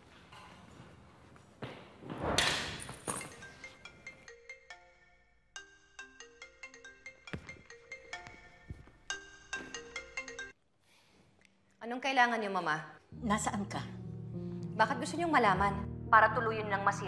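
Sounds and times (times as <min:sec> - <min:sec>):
mobile phone ringtone melody: 0:03.3 - 0:10.6.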